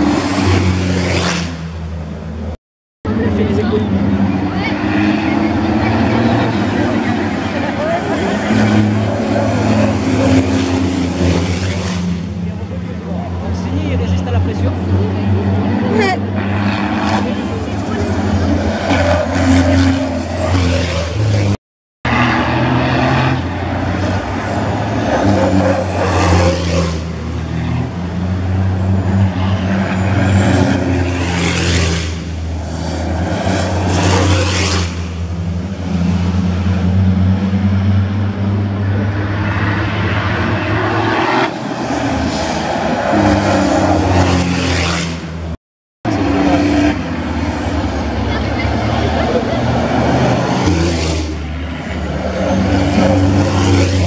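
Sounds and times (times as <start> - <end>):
diesel truck engines racing: 0.0 - 54.0.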